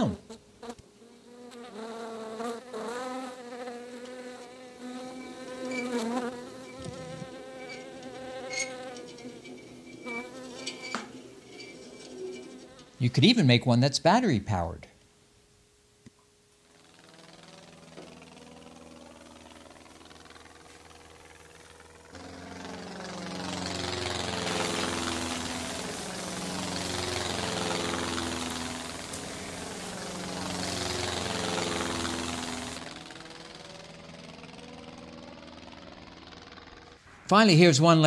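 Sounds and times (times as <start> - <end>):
electric motor spinning propeller: 2.4 - 13.0, 16.7 - 37.0.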